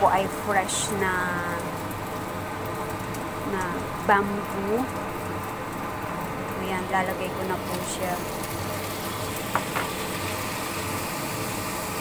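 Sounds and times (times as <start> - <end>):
oil sizzling in a wok: 0.0 - 12.0.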